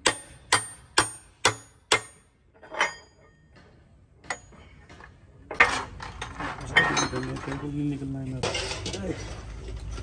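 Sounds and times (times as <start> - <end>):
hammer striking steel: 0.0 - 5.0.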